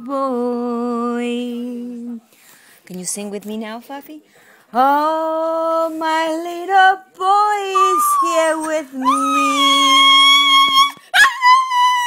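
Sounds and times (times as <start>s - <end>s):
woman singing: 0.0s - 2.2s, 4.8s - 11.7s
dog howling: 7.8s - 12.0s.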